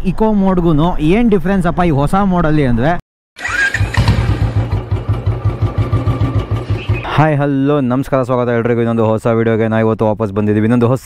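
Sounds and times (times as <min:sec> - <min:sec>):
motorcycle engine starting and idling: 0:03.4 - 0:07.2.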